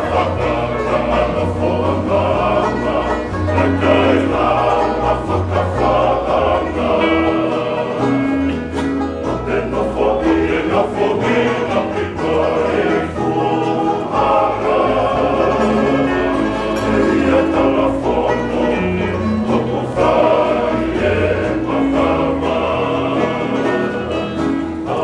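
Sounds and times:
bass line: 0.0s - 25.0s
men singing in harmony: 0.0s - 25.0s
strummed acoustic guitars: 0.0s - 25.0s.

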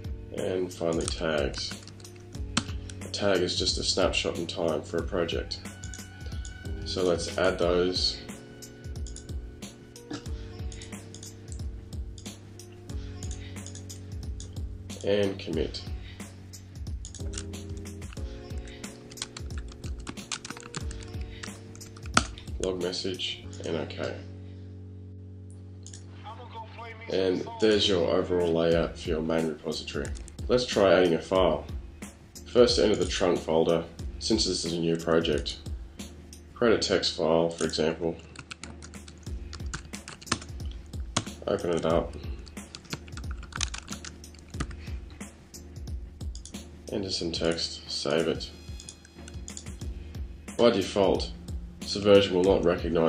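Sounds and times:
background music: 0.0s - 53.0s
computer keyboard typing: 0.9s - 3.0s, 9.0s - 9.3s, 10.6s - 11.6s, 13.2s - 14.6s, 16.9s - 22.4s, 37.6s - 44.8s, 46.3s - 46.6s, 48.8s - 49.8s.

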